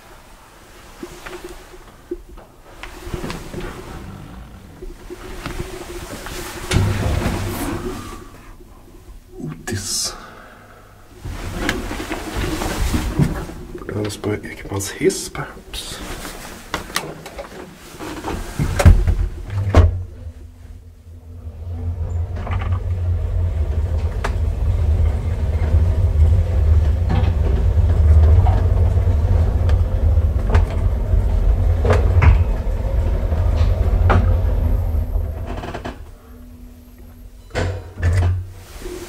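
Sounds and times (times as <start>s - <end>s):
elevator car rumbling in shaft: 2.4s - 9.2s, 18.4s - 39.0s
elevator clicks and knocks: 21.8s - 36.1s.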